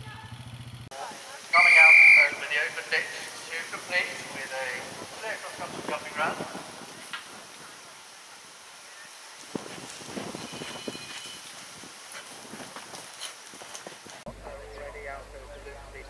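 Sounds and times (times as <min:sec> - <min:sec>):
horse hooves galloping on turf: 0:00.0 - 0:07.9, 0:09.2 - 0:16.0
steady low hum: 0:14.3 - 0:16.0.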